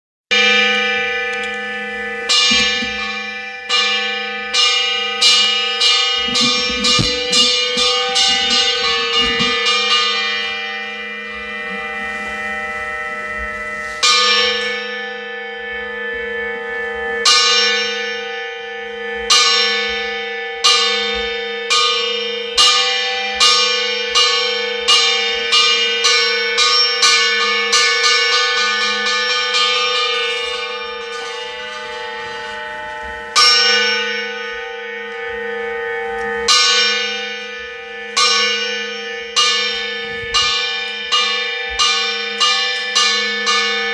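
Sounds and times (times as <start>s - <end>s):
church bells ringing: 0.3s - 43.9s.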